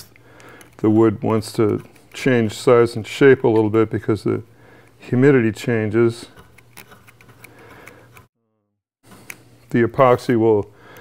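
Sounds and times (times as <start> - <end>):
metal point scratching on file: 6.3 - 8.3.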